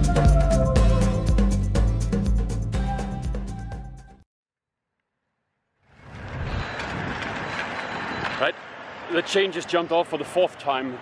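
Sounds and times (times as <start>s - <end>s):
background music: 0.0s - 4.2s
rushing outdoor noise: 5.9s - 11.0s.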